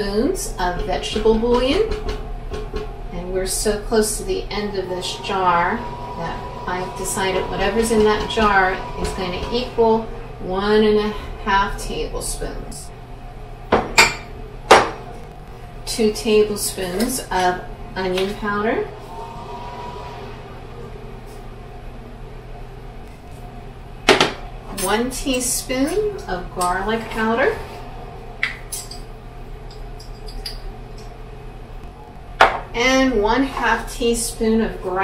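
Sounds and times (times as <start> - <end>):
low kitchen hum: 0.0 - 35.0.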